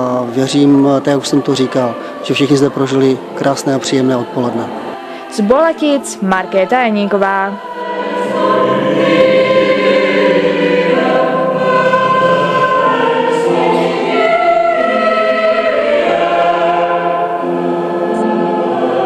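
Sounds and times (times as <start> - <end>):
mixed choir singing: 0.0 - 19.0.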